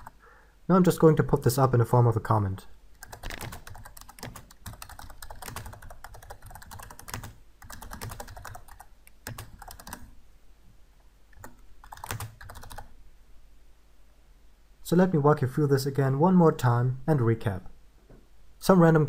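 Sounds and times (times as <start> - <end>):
computer keyboard typing: 0.0 - 0.2, 3.0 - 10.2, 11.4 - 12.9.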